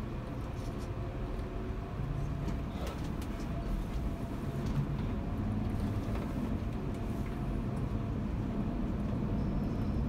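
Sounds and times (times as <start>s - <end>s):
bus engine running: 0.0s - 10.0s
road noise: 0.0s - 10.0s.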